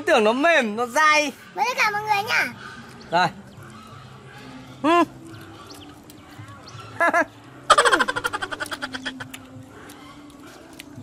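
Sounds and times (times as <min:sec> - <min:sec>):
person laughing: 0:07.0 - 0:09.1.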